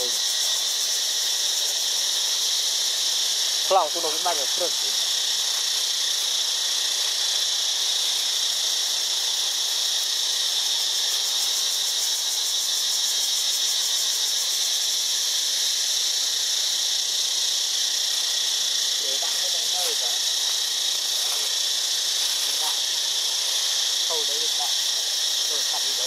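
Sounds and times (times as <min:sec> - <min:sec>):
insects droning: 0:00.0 - 0:26.0.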